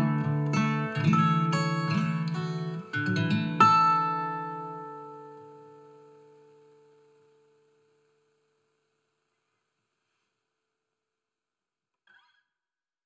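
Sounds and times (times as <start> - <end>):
acoustic guitar chord ringing: 0.0 - 8.9.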